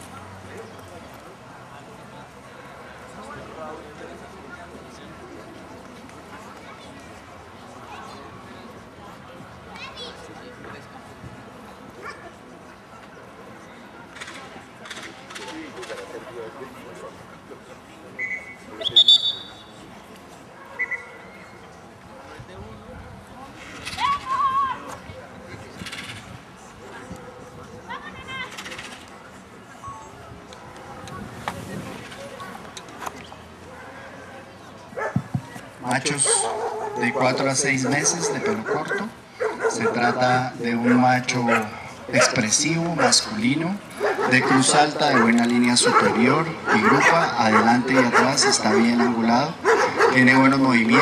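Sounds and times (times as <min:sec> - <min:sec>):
low background noise: 0:00.0 - 0:51.0
outdoor background noise: 0:00.0 - 0:51.0
dog barking: 0:35.0 - 0:35.2, 0:36.2 - 0:42.4, 0:43.0 - 0:43.3, 0:44.0 - 0:51.0
dog yipping: 0:44.0 - 0:50.2.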